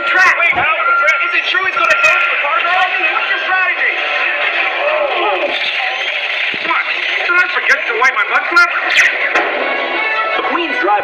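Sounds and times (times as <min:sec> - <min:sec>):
continuous background sound: 0:00.0 - 0:11.0
film dialogue: 0:00.0 - 0:11.0.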